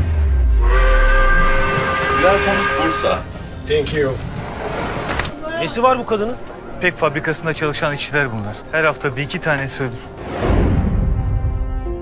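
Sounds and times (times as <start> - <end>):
steam train whistle: 0.4 - 3.5.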